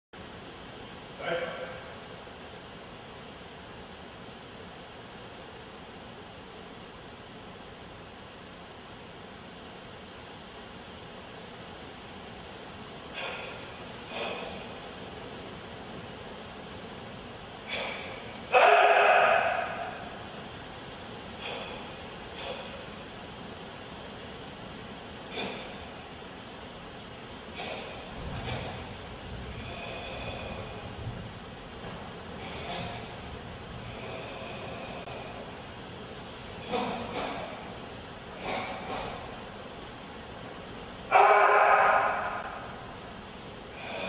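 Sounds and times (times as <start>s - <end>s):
forceful breaths and sharp exhalations: 11.8s - 44.0s.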